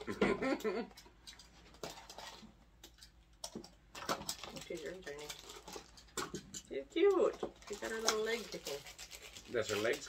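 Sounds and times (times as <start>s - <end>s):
plastic crinkling: 3.9s - 6.2s, 7.2s - 10.0s.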